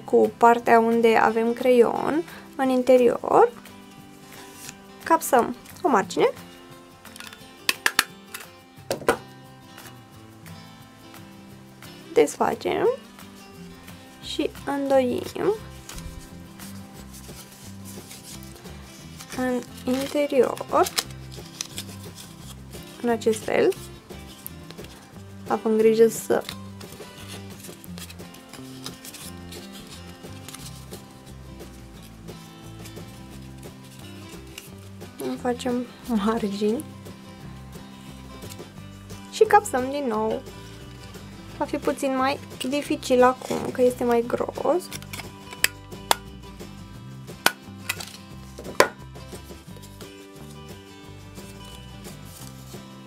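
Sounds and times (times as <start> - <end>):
background music: 0.0 - 53.0
cardstock rustling: 4.3 - 4.8, 15.1 - 25.1, 26.0 - 35.5, 47.4 - 50.2, 51.4 - 52.8.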